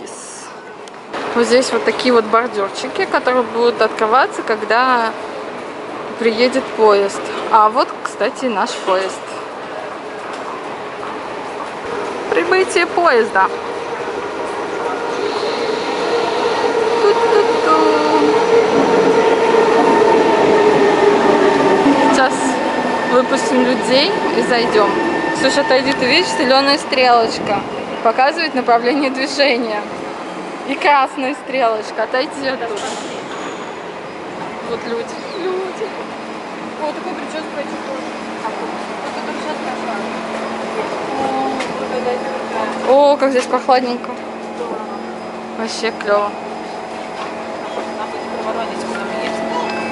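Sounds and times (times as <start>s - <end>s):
passengers chatting: 0.0s - 49.9s
rolling rail noise: 0.0s - 49.9s
metro train electric whine: 0.6s - 49.9s.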